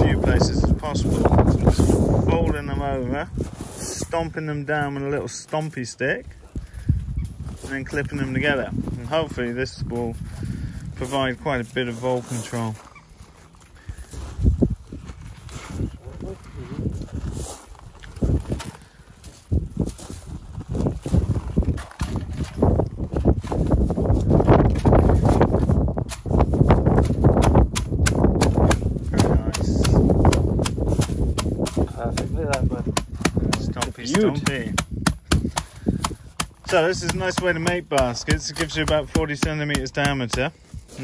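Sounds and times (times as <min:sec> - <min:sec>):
wooden stick knocking on gravel: 0:26.9 - 0:40.6.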